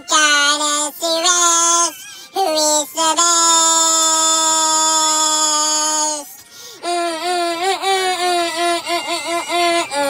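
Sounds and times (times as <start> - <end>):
high child-like singing voice: 0.0 - 10.0.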